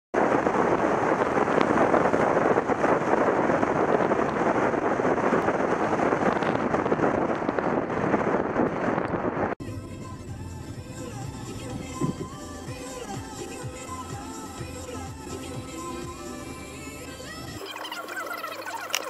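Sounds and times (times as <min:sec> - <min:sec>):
wind buffeting microphone: 0:00.2 - 0:17.0.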